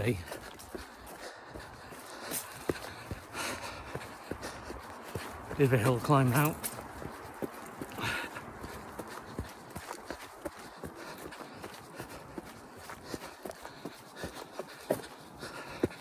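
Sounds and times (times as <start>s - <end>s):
footsteps on muddy trail: 0.0s - 16.0s.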